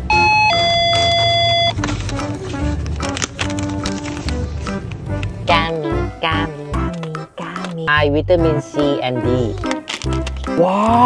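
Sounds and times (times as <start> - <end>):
electronic two-note door chime: 0.0 - 1.8.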